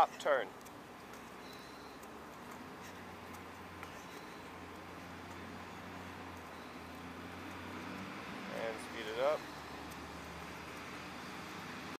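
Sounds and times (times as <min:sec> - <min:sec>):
feet tapping soccer ball: 0:00.1 - 0:11.9.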